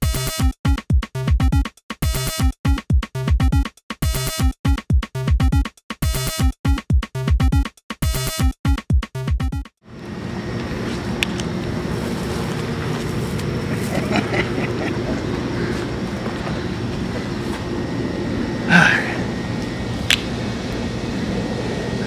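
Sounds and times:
low mechanical hum: 9.9s - 22.0s
short vocal sound: 18.7s - 19.3s.

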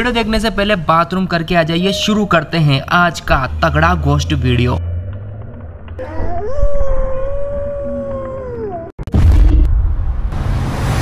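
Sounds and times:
low rumble: 2.8s - 11.0s
long wailing howl: 4.8s - 9.0s.

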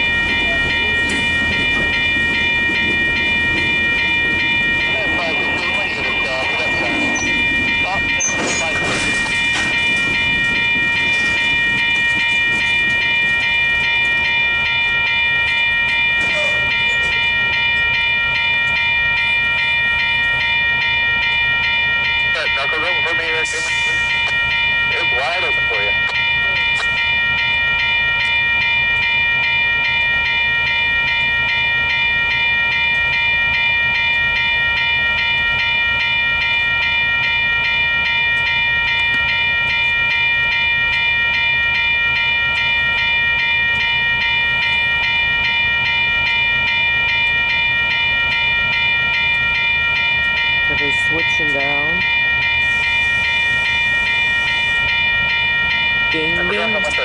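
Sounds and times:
level crossing bell ringing: 0.0s - 57.0s.

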